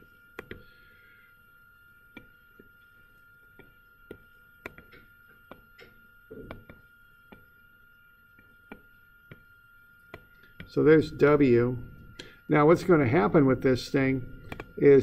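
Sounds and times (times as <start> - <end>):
faint high-pitched tone: 0.0 - 15.0
stylus tapping on tablet screen: 0.4 - 0.7, 2.1 - 2.7, 3.5 - 7.5, 8.4 - 9.5, 10.1 - 10.7, 14.4 - 14.7.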